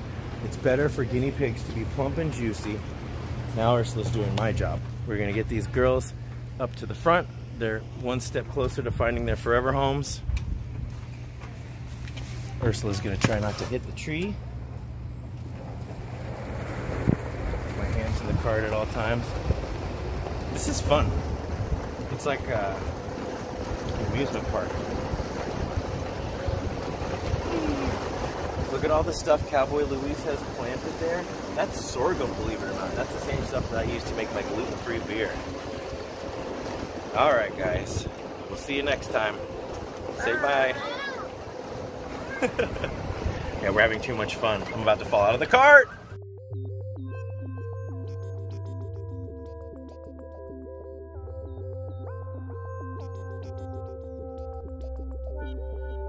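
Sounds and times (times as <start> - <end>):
cart rumbling over sand: 0.0 - 7.2, 8.0 - 14.1, 15.4 - 45.8
utility cart motor humming: 10.3 - 45.8
wind on microphone: 16.7 - 18.6, 19.2 - 31.6, 41.3 - 43.7.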